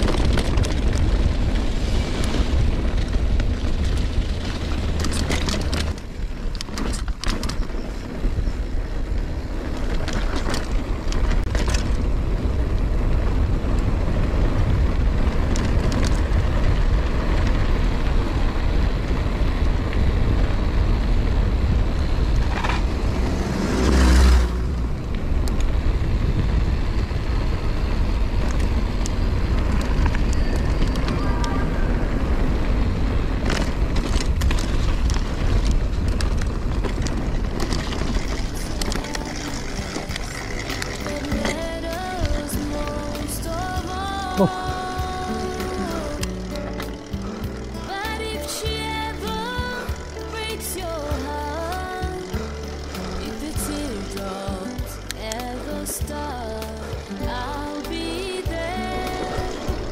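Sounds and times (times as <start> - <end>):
bike clicks and rattles: 0.0 - 59.9
bike tyres on gravel: 0.0 - 59.9
wind rumbling on microphone: 0.0 - 59.9.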